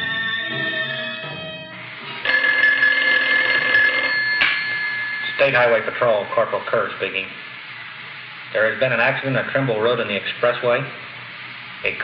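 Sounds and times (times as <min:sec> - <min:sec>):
telephone bell ringing: 0:00.0 - 0:06.0.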